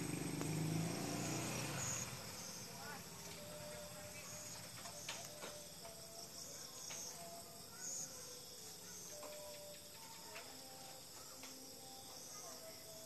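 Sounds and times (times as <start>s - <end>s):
insects chirping: 0.0s - 13.0s.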